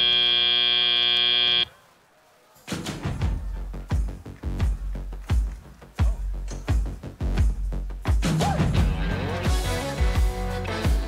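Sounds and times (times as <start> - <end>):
electronic buzzer: 0.0 - 1.7
music with heavy beat: 2.9 - 11.0.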